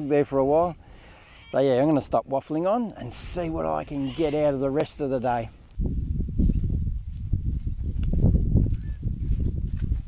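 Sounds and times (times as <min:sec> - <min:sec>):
wind buffeting microphone: 0:03.0 - 0:10.0.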